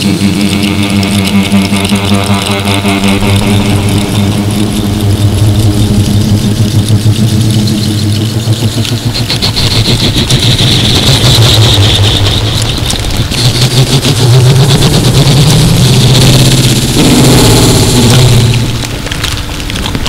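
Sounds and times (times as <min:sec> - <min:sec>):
rising pitched tone: 0:00.0 - 0:19.4
low droning engine-like hum: 0:00.0 - 0:20.0.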